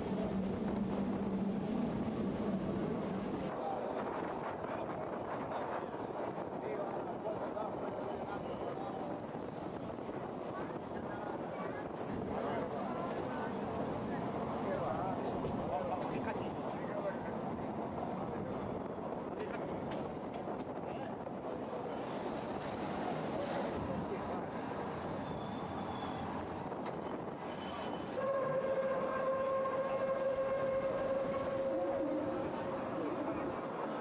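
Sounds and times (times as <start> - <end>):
train carriage rumbling: 0.0 - 34.0.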